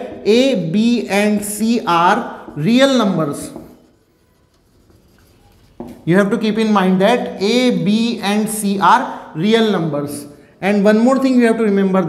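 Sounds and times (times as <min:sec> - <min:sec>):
marker pen scratching on whiteboard: 0:00.9 - 0:06.5.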